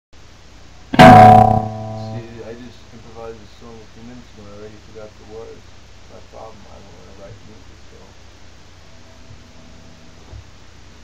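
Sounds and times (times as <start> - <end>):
electric guitar chord ringing: 0.9 - 2.7.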